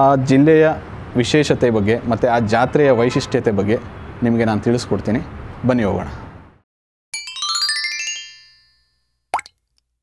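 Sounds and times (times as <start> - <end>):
rising run of bright chimes: 7.2 - 9.1.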